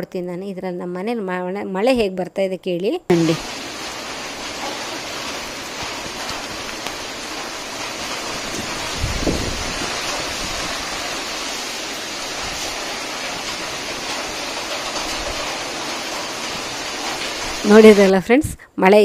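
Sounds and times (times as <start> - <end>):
rain on foliage: 3.1 - 18.3.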